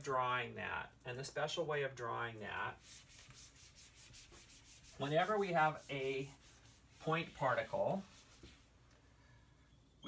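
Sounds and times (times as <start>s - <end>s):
eraser rubbing whiteboard: 2.7s - 8.7s.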